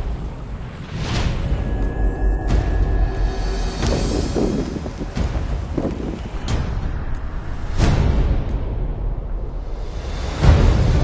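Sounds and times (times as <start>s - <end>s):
deep low rumble: 0.0s - 11.0s
strong wind buffeting microphone: 1.4s - 11.0s.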